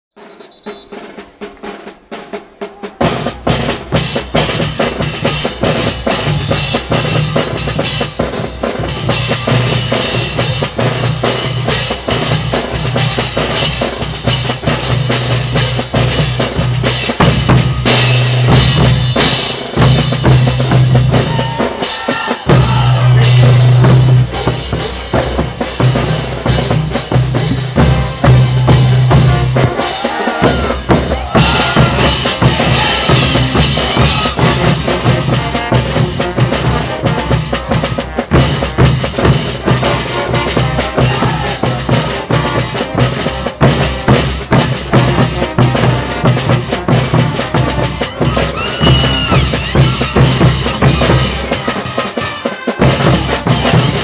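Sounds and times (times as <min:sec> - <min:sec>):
snare and bass drum beat: 0:00.1 - 0:54.0.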